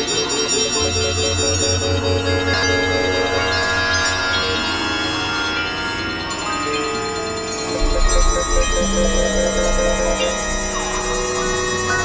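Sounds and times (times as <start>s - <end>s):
rapidly pulsing ringtone-like tone: 0.0s - 12.0s
synthesizer drones: 0.0s - 12.0s
heavy low bass: 7.8s - 12.0s.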